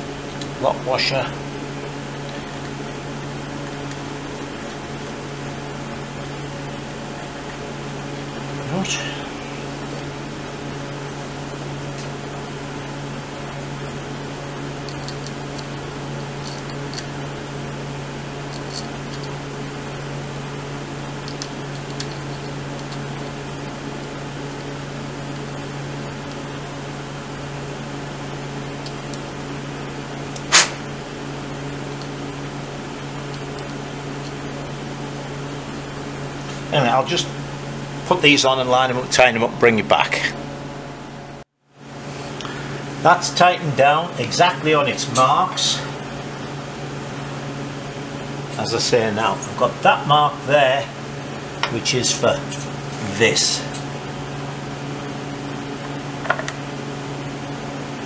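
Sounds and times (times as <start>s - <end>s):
low mechanical hum: 0.0s - 58.0s.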